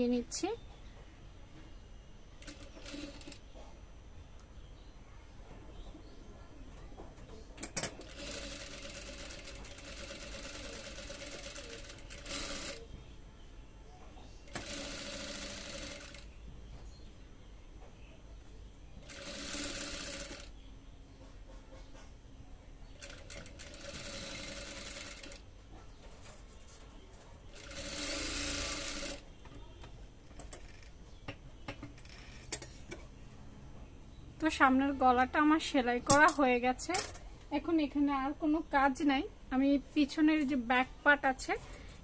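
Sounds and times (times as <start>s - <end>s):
sewing machine stitching: 2.4s - 3.4s, 7.7s - 12.8s, 14.5s - 16.2s, 19.0s - 20.5s, 23.0s - 25.4s, 27.5s - 29.2s.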